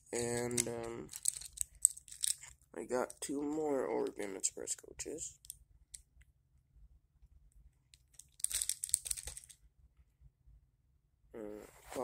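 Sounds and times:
crinkling rustle: 0.2 - 4.2, 8.1 - 9.6.

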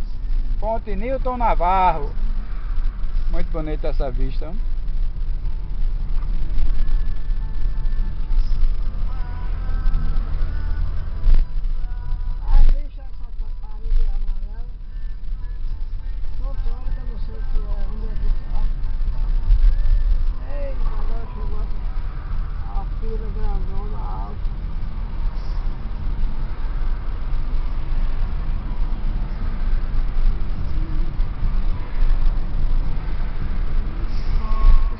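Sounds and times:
car cabin road and engine rumble: 0.0 - 34.9
faint voices or radio: 6.1 - 34.9.

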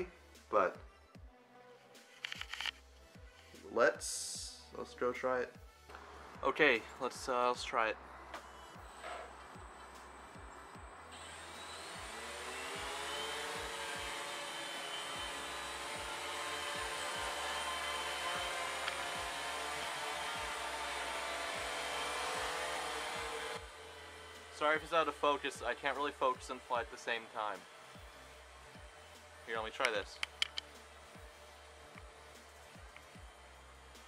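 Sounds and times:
drone motors whining: 8.0 - 25.3.

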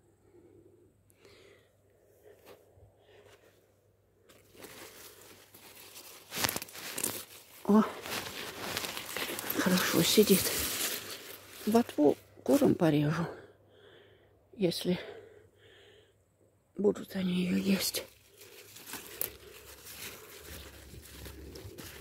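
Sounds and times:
leaves rustling and crackling: 4.2 - 12.9, 17.4 - 22.0.

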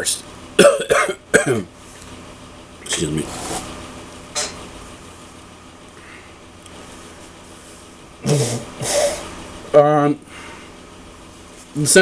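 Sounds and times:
man blowing nose into tissue: 8.2 - 9.3.

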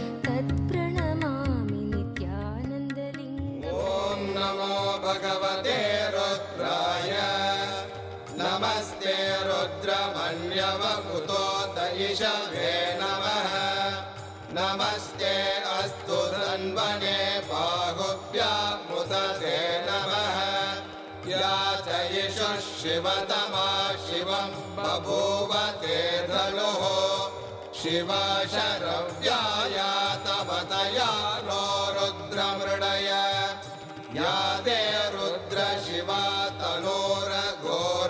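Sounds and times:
instrumental accompaniment: 0.0 - 38.0
devotional chanting: 3.1 - 38.0.

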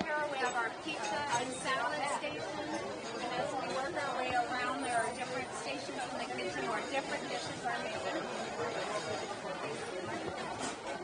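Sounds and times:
many people talking at once: 0.0 - 11.0.

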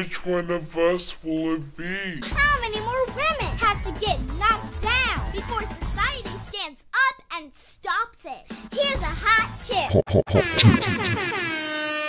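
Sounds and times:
person laughing: 9.9 - 12.0.

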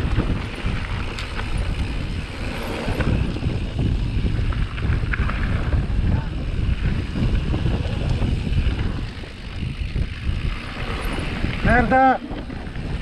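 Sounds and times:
bike tyres crunching and rattling: 0.0 - 13.0
wind rushing over microphone: 0.0 - 13.0.

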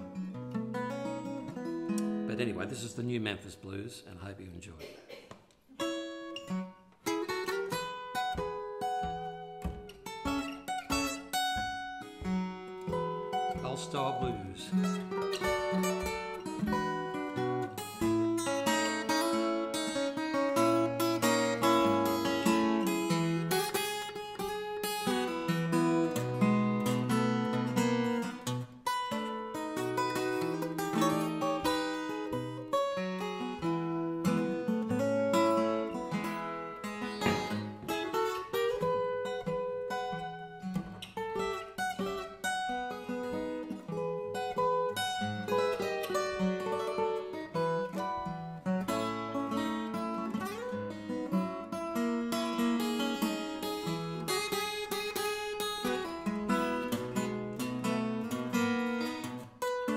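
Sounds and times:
fingerstyle acoustic blues guitar: 0.0 - 3.9, 4.6 - 59.9.

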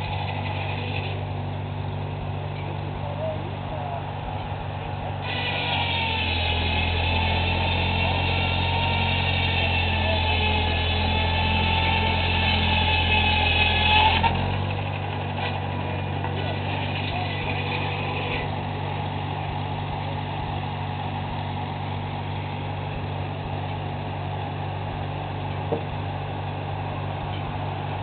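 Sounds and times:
high whine: 0.0 - 28.0
tractor engine running: 0.0 - 28.0.

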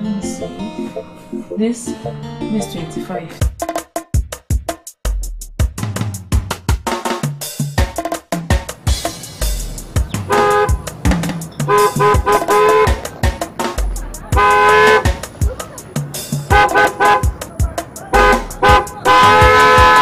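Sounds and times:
drum-beat music: 2.6 - 20.0
car horn honking: 10.1 - 11.0, 11.6 - 13.1, 14.4 - 15.2, 16.5 - 17.4, 18.0 - 20.0.

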